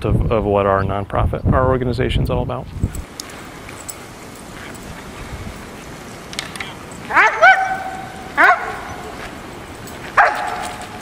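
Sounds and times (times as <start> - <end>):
dog barking: 7.1 - 9.3, 10.2 - 11.0.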